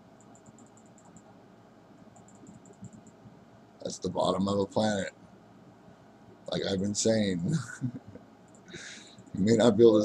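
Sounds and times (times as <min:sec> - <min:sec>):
room hiss: 0:00.0 - 0:10.0
computer mouse ticking: 0:00.2 - 0:01.3, 0:02.1 - 0:03.2, 0:08.5 - 0:09.4.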